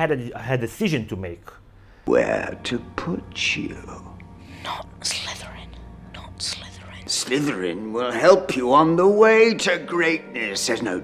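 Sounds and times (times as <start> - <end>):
boy whispering: 4.6 - 7.2.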